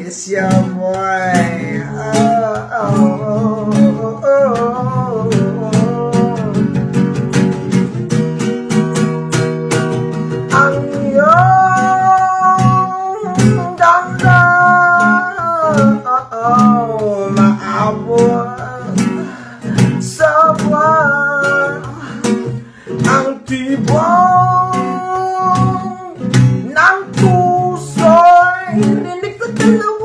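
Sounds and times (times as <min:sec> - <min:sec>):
man singing: 0:00.0 - 0:07.3, 0:10.4 - 0:30.0
acoustic guitar strumming: 0:00.0 - 0:30.0.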